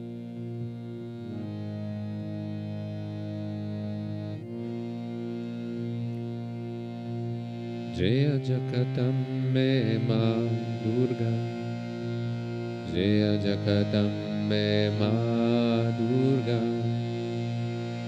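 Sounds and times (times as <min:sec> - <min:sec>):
harmonium chords: 0:00.0 - 0:18.0.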